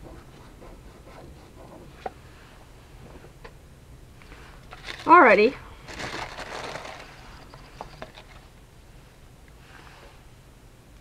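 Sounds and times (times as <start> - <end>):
paper rustling: 4.7 - 5.2, 5.9 - 8.5.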